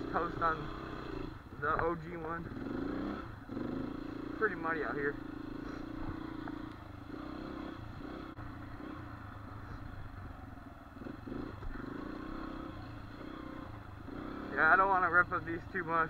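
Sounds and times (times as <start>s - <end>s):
dirt bike engine running: 0.0s - 16.0s.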